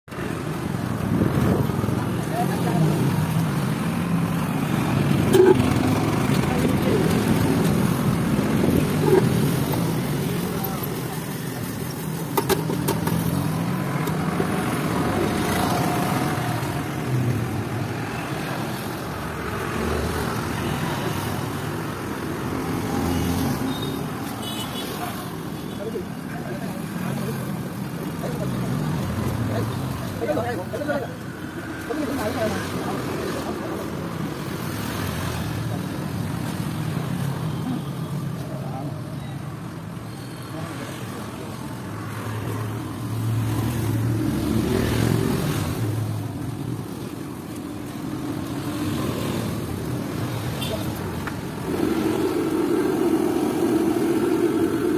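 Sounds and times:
traffic noise: 0:00.0 - 0:54.9.

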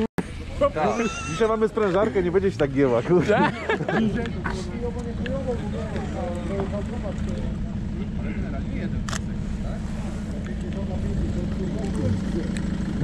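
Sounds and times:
faint voices: 0:00.2 - 0:13.0
motor pulsing drone: 0:04.3 - 0:13.0.

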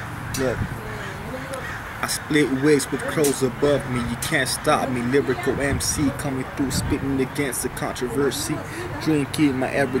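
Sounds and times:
man speaking: 0:00.4 - 0:00.8, 0:02.0 - 0:10.0
crows cawing: 0:00.4 - 0:03.6.

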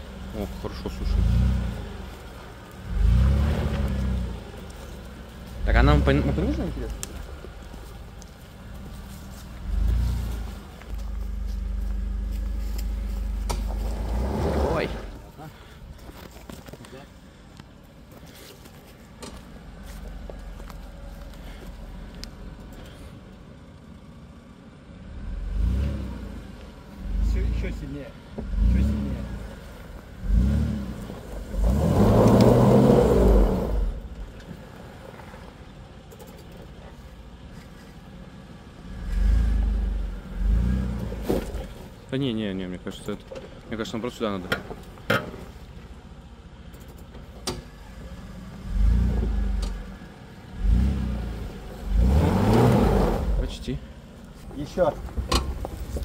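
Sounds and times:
suv engine revving off-road: 0:00.0 - 0:15.3, 0:24.9 - 0:36.3, 0:38.5 - 0:42.1, 0:47.5 - 0:56.0.

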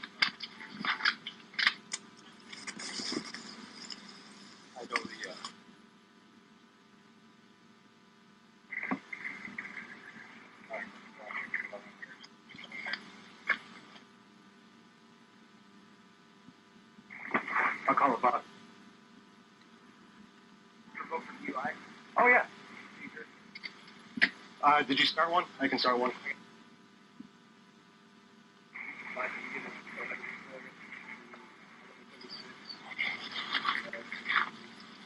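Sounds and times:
steady electrical hum: 0:00.0 - 0:35.0
police radio chatter: 0:04.7 - 0:05.6, 0:08.7 - 0:13.8, 0:17.1 - 0:18.4, 0:21.0 - 0:23.7, 0:28.8 - 0:35.0.

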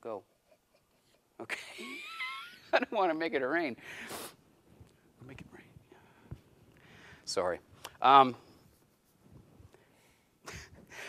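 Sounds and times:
man whispering: 0:05.2 - 0:06.2.

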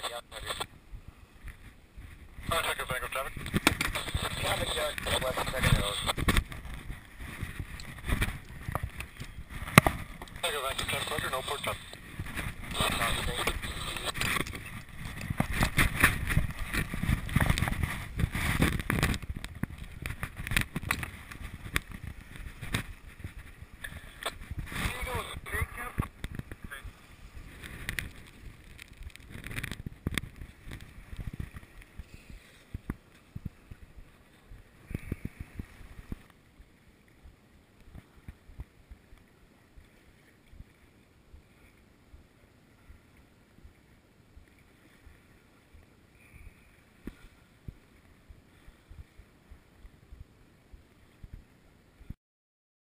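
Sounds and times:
water noise: 0:00.0 - 0:52.2
wind: 0:00.0 - 0:52.2.

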